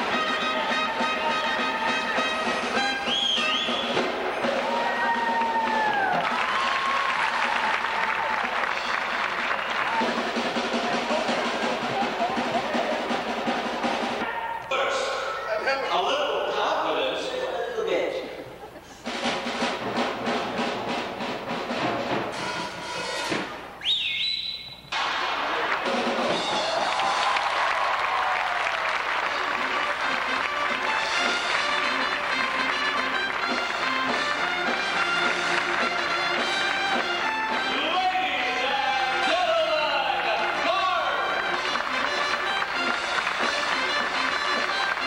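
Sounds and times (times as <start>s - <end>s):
audience applauding: 0.0s - 13.3s, 25.0s - 37.5s, 40.1s - 45.0s
music: 0.0s - 14.3s, 19.0s - 23.8s, 25.3s - 45.0s.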